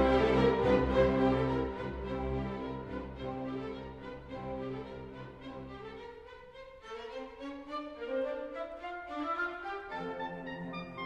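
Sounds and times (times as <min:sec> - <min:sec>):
orchestral music: 0:00.0 - 0:11.0.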